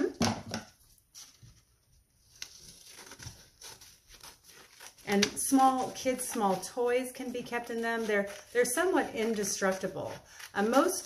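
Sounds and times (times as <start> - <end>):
scissors cutting paper: 2.5 - 11.0.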